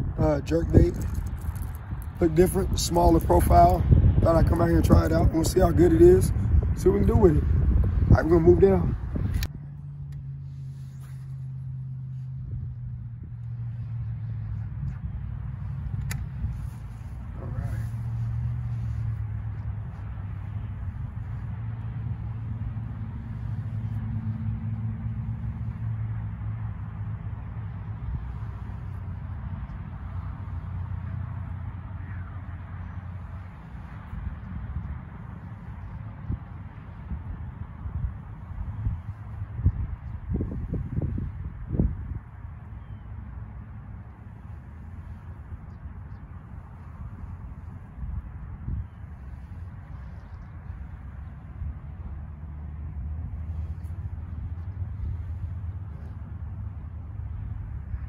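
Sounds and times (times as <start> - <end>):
wind buffeting microphone: 0.0 - 58.0
sharp click: 16.0 - 16.3.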